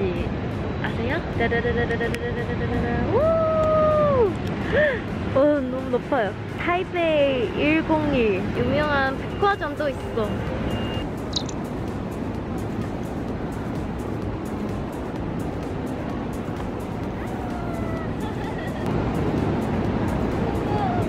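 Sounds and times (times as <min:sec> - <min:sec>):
street traffic rushing: 0:00.0 - 0:21.0
background music with steady beat: 0:09.2 - 0:21.0.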